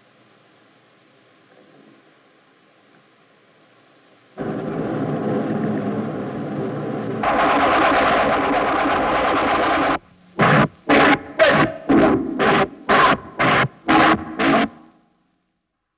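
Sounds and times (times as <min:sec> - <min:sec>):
loud rushing roar: 0:04.4 - 0:14.9.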